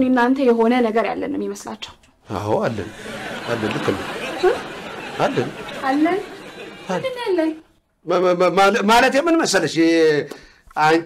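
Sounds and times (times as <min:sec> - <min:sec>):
people talking: 0:00.0 - 0:09.9.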